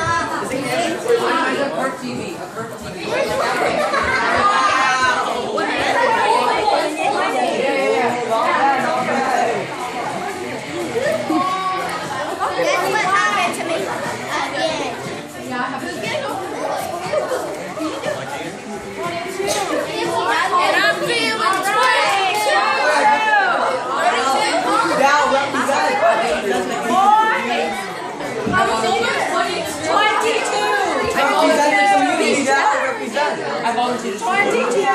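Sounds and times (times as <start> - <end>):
teenagers chattering: 0.0 - 34.9.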